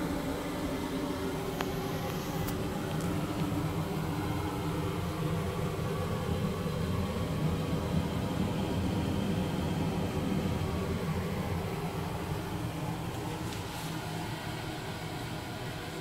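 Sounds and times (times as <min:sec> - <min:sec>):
ship machinery hum and rumble: 0:00.0 - 0:16.0.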